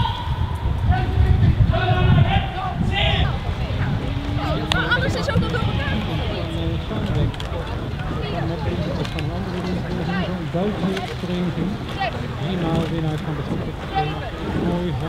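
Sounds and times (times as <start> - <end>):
indistinct voices talking: 0.0 - 15.0
low outdoor rumble: 0.0 - 15.0.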